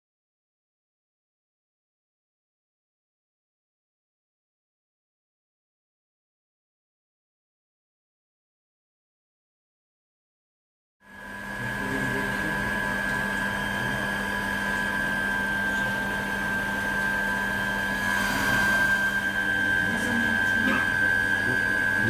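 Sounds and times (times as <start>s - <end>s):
pump humming with high whine: 11.0s - 22.0s.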